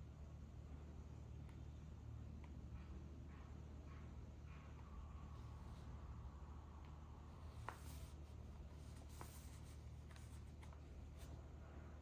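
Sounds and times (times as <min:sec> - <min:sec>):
faint low hum: 0:00.0 - 0:12.0
paper rustling: 0:07.5 - 0:11.4.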